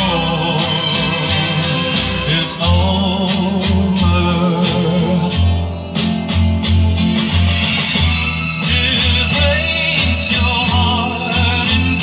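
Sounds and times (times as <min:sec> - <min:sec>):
music from loudspeakers: 0:00.0 - 0:12.0.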